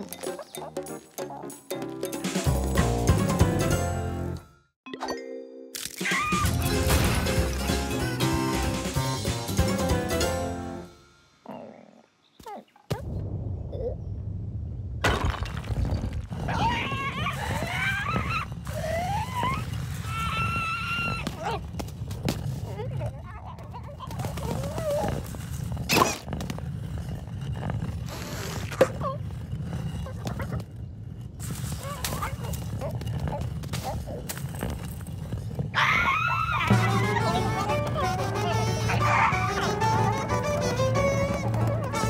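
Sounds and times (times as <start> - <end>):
cartoon music: 4.9 - 10.9, 36.7 - 42.0.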